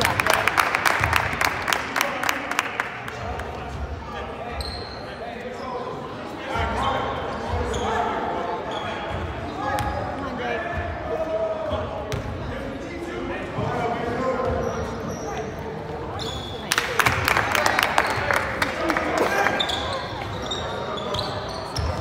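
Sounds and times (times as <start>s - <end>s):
indistinct voices in a gym: 0.0s - 22.0s
shoe squeaks and knocks: 4.6s - 5.1s, 14.5s - 15.5s, 16.2s - 16.6s, 19.5s - 22.0s.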